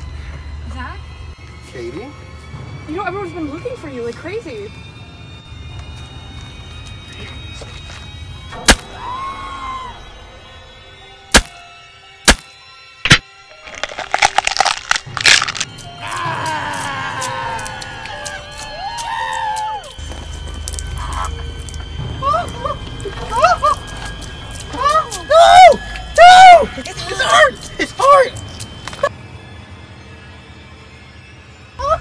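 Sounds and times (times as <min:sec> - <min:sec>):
music: 0:00.0 - 0:32.0
sharp cracks: 0:08.6 - 0:09.0, 0:11.3 - 0:11.6, 0:12.3 - 0:15.9
wet crackling squelch: 0:13.1 - 0:22.7.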